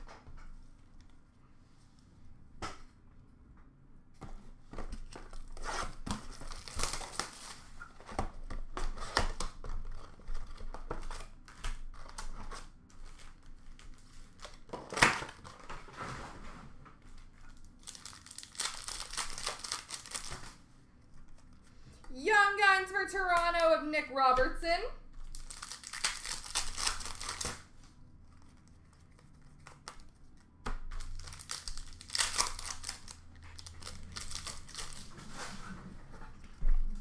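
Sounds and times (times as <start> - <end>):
wrapper tearing and crinkling: 6.3 - 7.8, 17.5 - 20.6, 25.2 - 27.7, 30.9 - 35.2.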